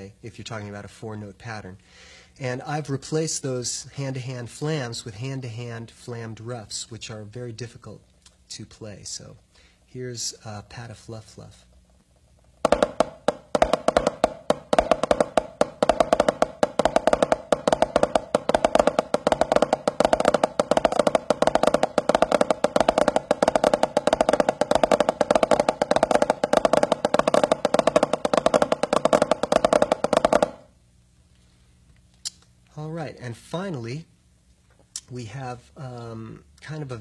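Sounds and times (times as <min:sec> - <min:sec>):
fast drumstick rudiment: 0:12.4 - 0:30.8.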